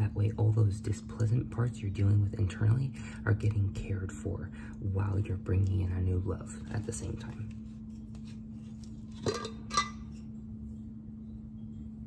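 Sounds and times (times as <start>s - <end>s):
steady low hum: 0.0s - 12.0s
glass jar clinks: 9.1s - 10.2s.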